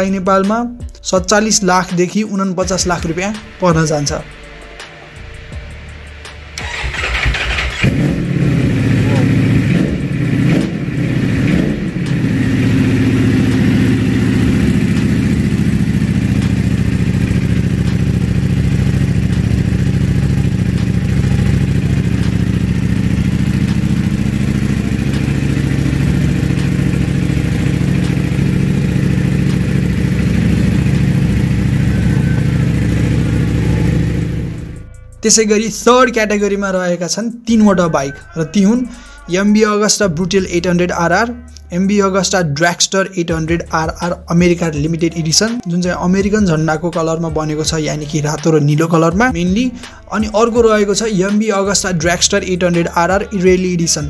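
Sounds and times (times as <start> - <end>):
motorcycle engine cranking: 6.6 - 34.8
motorcycle engine revving and idling: 6.6 - 35.0, 43.3 - 54.0.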